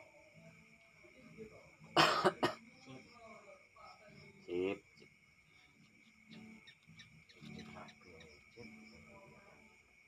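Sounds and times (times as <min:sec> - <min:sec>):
person coughing: 0:02.0 - 0:02.6.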